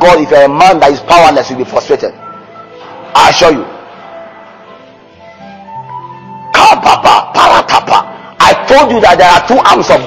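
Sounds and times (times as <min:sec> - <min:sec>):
man's loud voice: 0:00.0 - 0:02.2, 0:03.2 - 0:03.8, 0:06.5 - 0:10.0
soft sustained background music: 0:00.0 - 0:10.0.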